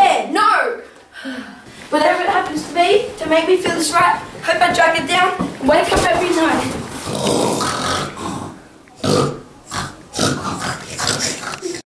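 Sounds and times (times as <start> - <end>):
children grunting: 9.2 - 11.8.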